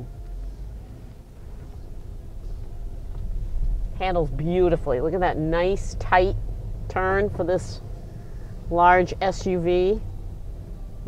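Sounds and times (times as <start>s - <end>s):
car engine low rumble: 0.0s - 11.0s.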